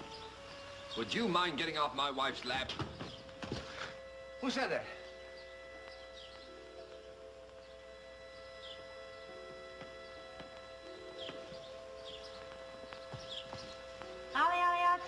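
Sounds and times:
soft background music: 0:00.0 - 0:15.0
bird chirps: 0:04.9 - 0:14.8.

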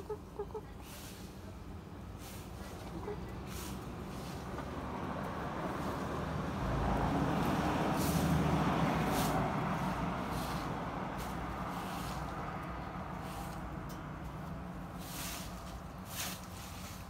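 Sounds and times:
motor vehicle passing: 0:00.0 - 0:17.0.

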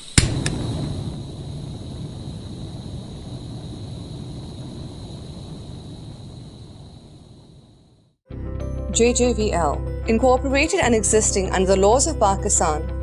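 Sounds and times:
low rumbling tail: 0:00.0 - 0:08.2.

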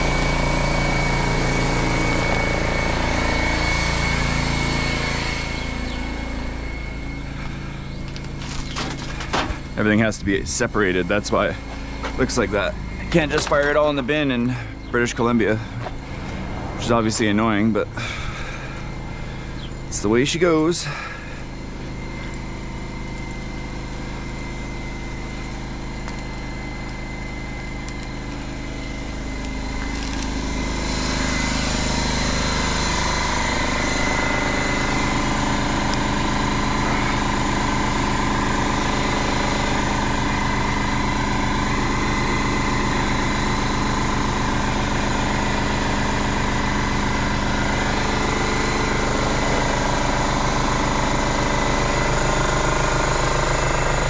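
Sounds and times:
engine running steadily: 0:00.0 - 0:54.0.

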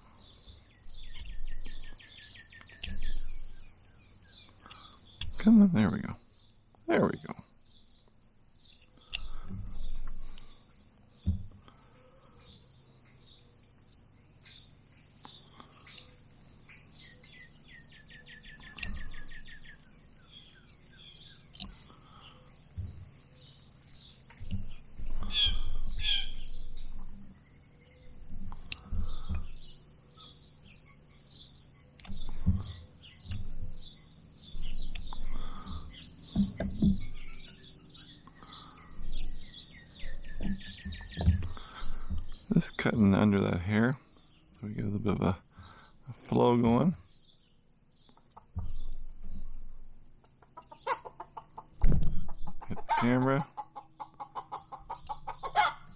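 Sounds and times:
birds chirping and calling: 0:00.0 - 0:55.9.

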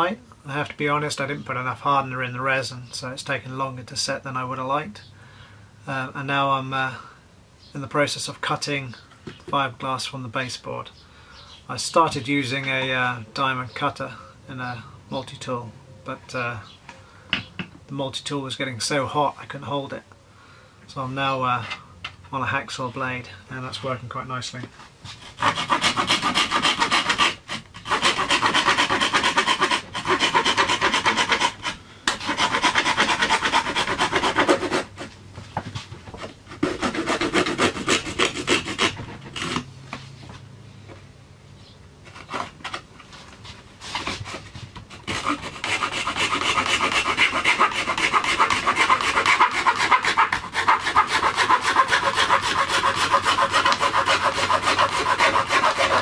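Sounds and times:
hacksaw sawing through fibreglass: 0:25.2 - 0:35.1, 0:36.5 - 0:39.7, 0:44.0 - 0:56.0.

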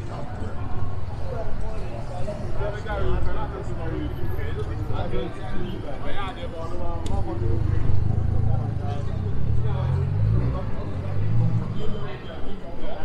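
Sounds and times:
low vehicle engine rumble: 0:00.0 - 0:12.4
passers-by talking: 0:00.0 - 0:13.0.

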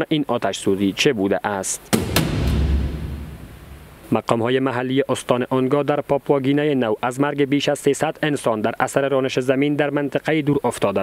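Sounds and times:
sudden hit: 0:01.9 - 0:04.2
low boom: 0:02.0 - 0:04.2.

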